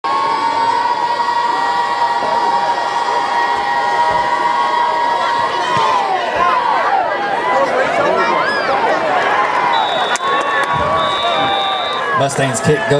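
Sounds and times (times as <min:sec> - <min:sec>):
long held crowd cry: 0:00.0 - 0:12.2
crowd cheering and shouting: 0:00.0 - 0:12.9
whistle: 0:09.7 - 0:12.2.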